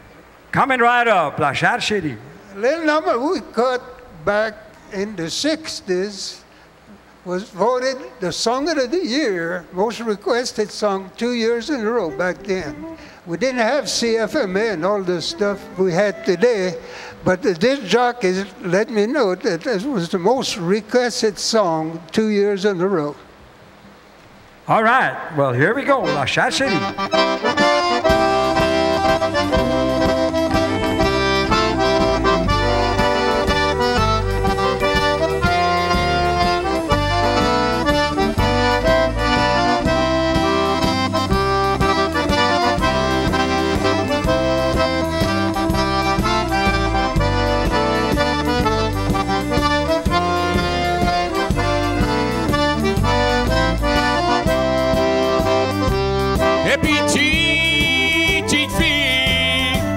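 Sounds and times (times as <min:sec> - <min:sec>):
fiddle: 0:11.7 - 0:17.6, 0:26.0 - 0:59.9
button accordion: 0:26.0 - 0:59.9
steady drum beat: 0:27.2 - 0:59.9.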